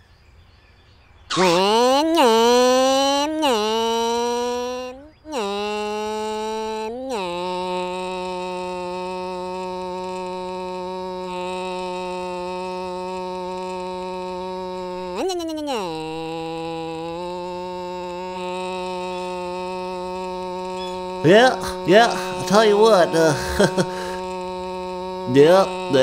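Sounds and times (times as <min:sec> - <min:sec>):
cartoon car engine droning: 0:01.3 - 0:26.0.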